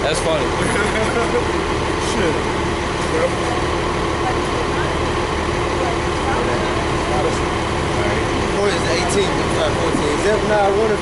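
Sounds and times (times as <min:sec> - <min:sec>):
faint voices: 0:00.0 - 0:11.0
traffic rumble: 0:00.0 - 0:11.0.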